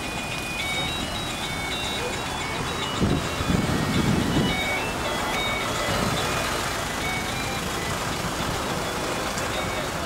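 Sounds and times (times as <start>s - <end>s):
short high-pitched tones: 0.0s - 8.1s
piling rig engine: 0.0s - 10.0s.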